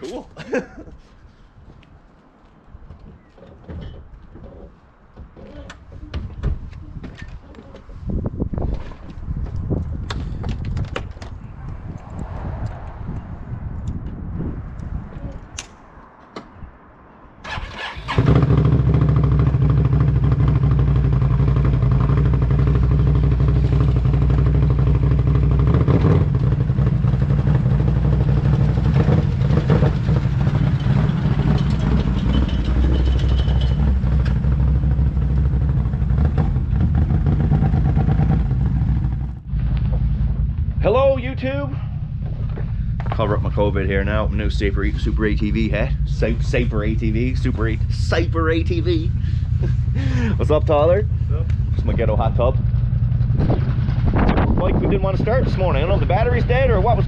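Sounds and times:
quad engine starting and idling: 17.4s - 24.7s, 41.8s - 52.2s.

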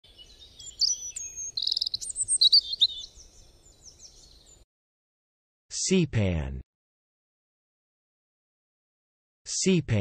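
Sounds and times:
birds chirping and singing: 0.0s - 4.6s.

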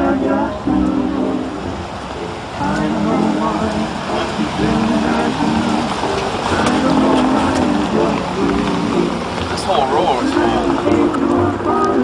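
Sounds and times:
background music: 0.0s - 12.0s
indistinct talking: 0.0s - 12.0s.

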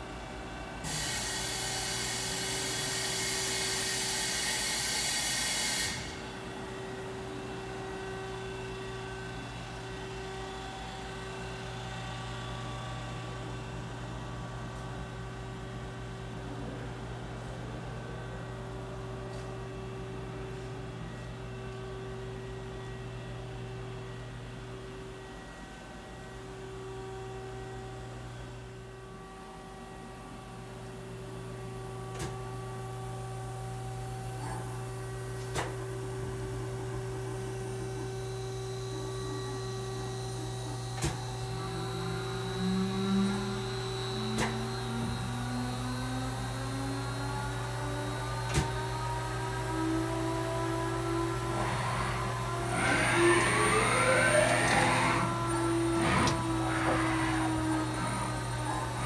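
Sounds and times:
lathe motor humming and whining: 0.1s - 16.8s, 28.8s - 59.0s.

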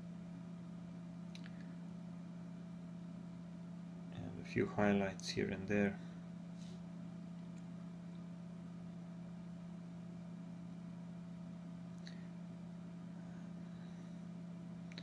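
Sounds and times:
low background hum: 0.0s - 15.0s
faint clicks: 1.3s - 1.7s.

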